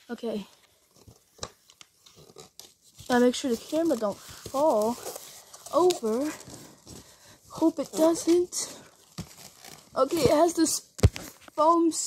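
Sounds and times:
taps and plastic crinkles: 0.5s - 11.8s.

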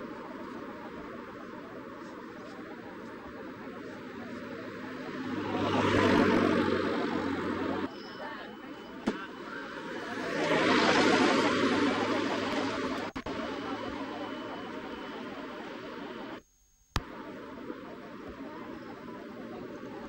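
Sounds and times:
engine passing by: 3.4s - 7.9s, 9.3s - 14.5s.

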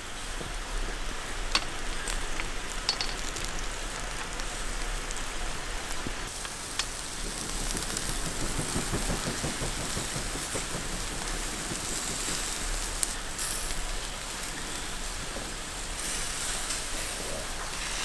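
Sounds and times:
meat sizzling on grill: 0.0s - 18.0s.

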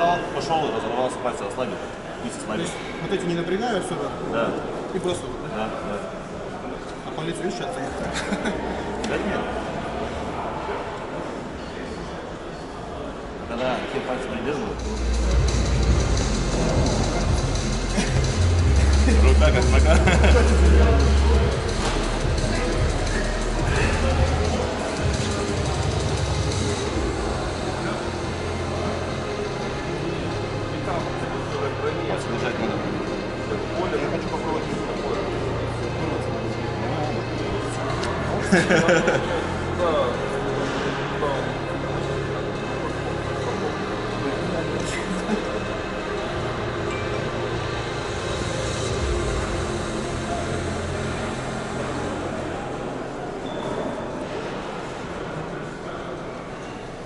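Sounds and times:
background chatter: 0.0s - 57.0s
faint voices: 0.0s - 57.0s
background music: 13.8s - 56.3s
low hum: 14.7s - 30.8s, 45.7s - 53.0s.

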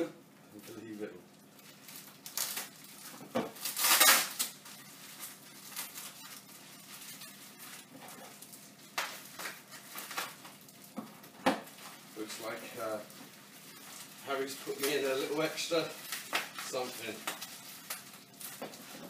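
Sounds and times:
plastic packaging crinkling: 0.6s - 19.0s.

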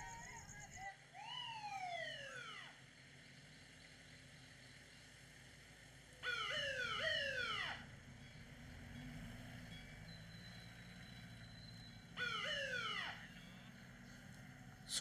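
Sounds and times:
police siren whoops: 0.0s - 2.8s, 6.2s - 7.9s, 12.1s - 13.8s.

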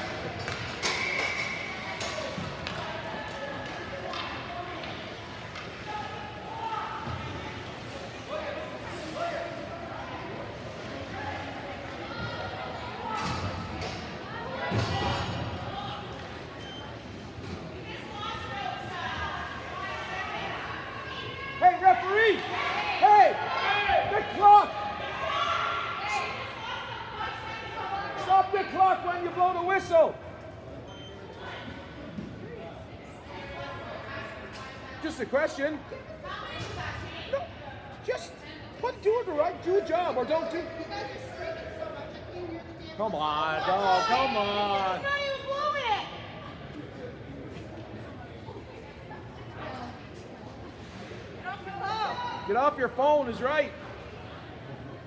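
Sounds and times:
murmur of spectators: 0.0s - 55.0s
hockey sticks and puck clacking: 0.3s - 2.9s.

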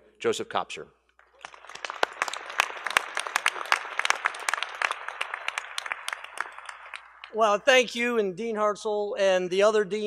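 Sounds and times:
audience applause: 1.2s - 7.9s.

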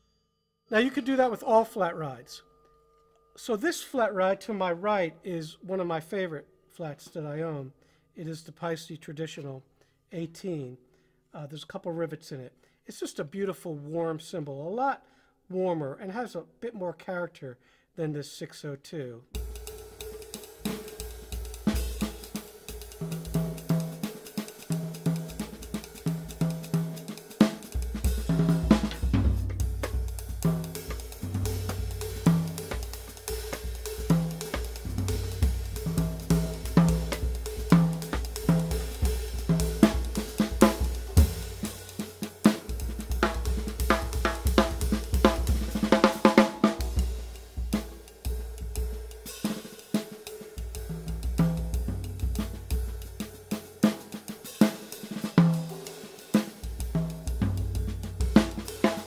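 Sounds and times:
bass drum: 19.4s - 49.2s, 50.6s - 54.1s, 56.6s - 59.0s
stick strokes on ride cymbal: 19.4s - 59.0s.

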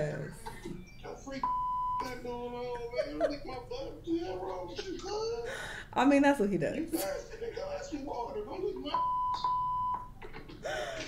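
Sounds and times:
high electronic beep: 0.7s - 2.2s, 8.9s - 10.2s.

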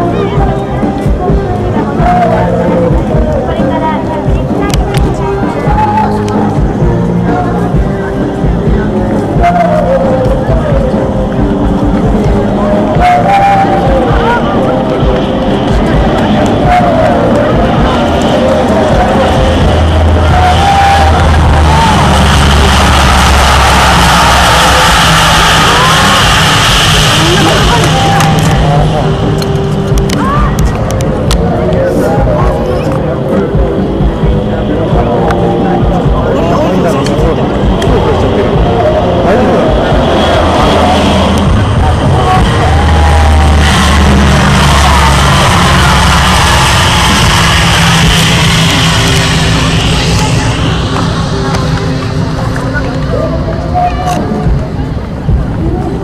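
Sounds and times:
bystanders' voices: 0.0s - 56.0s
turboprop engines droning: 0.0s - 56.0s.

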